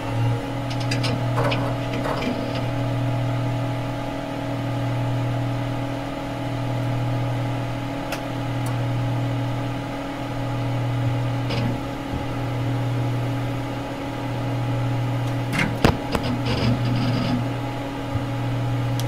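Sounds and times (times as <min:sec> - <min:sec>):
low electronic hum: 0:00.0 - 0:19.0.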